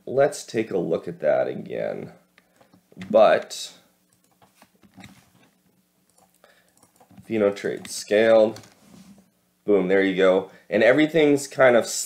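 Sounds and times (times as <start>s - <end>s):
keyboard clicks: 6.1s - 8.8s.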